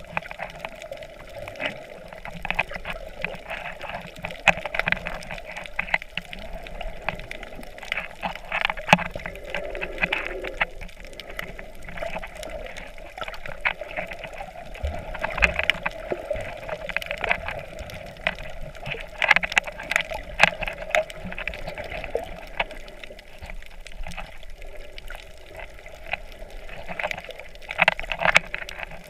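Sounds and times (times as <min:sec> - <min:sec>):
sharp underwater clicks: 0:00.0 - 0:29.0
water moving and bubbling underwater: 0:00.0 - 0:29.0.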